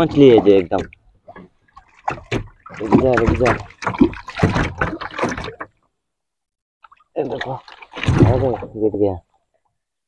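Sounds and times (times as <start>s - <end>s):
water splashing against a boat: 0.0s - 5.9s, 6.8s - 9.8s.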